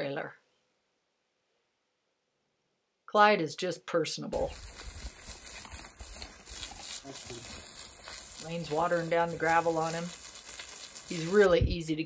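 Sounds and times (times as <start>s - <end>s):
hose spraying water onto gravel: 4.4s - 11.8s.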